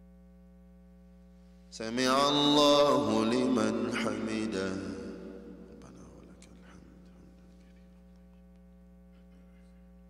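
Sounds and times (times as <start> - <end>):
electrical mains hum: 0.0 - 10.0
man chanting: 1.7 - 7.4.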